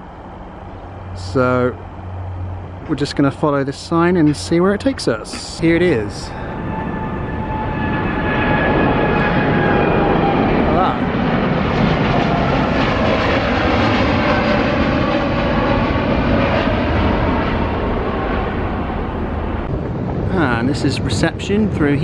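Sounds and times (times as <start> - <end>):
faint jet whine: 0.0 - 22.0
jet engines roaring: 0.0 - 22.0.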